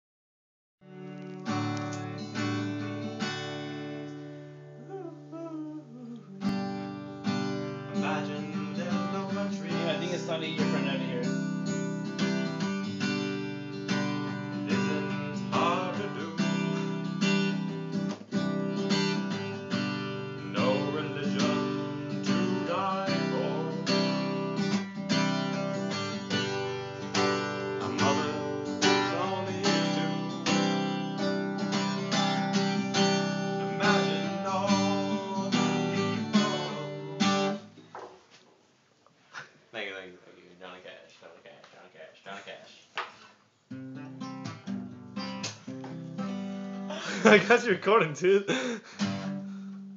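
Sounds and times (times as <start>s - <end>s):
acoustic guitar strumming: 0.8s - 4.8s, 6.3s - 37.8s, 43.7s - 49.9s.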